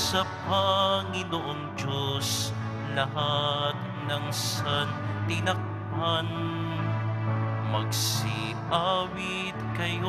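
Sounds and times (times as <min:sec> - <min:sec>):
chant-like hymn singing: 0:00.0 - 0:10.0.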